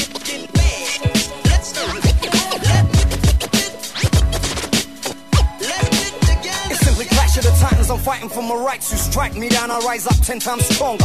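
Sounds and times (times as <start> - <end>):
hip hop beat with kick drums: 0.0 - 11.0
turntable scratching: 0.0 - 11.0.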